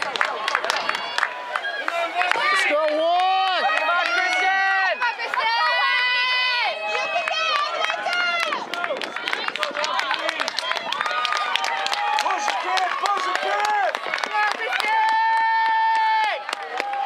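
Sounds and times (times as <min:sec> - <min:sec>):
people clapping: 0:00.0 - 0:17.0
spectators yelling and cheering: 0:00.0 - 0:17.0.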